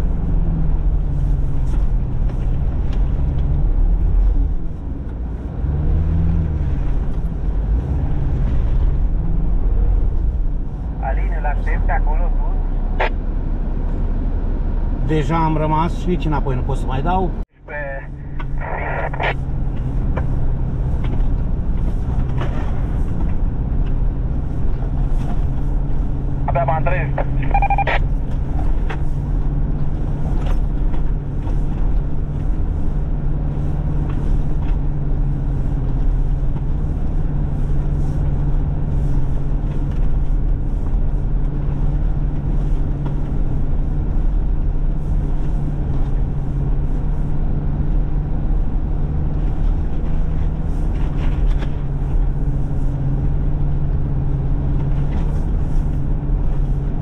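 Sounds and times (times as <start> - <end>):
tires rolling through snow: 0.0 - 11.1, 11.7 - 57.0
low engine drone: 0.0 - 15.3, 16.2 - 57.0.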